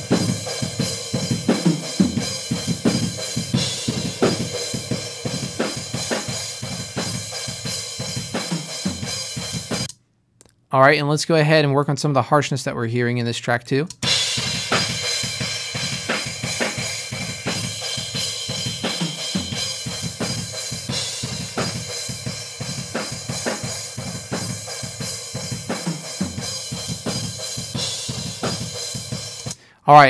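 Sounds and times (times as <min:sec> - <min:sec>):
drum kit playing metal: 0:00.0 - 0:09.9, 0:13.9 - 0:30.0.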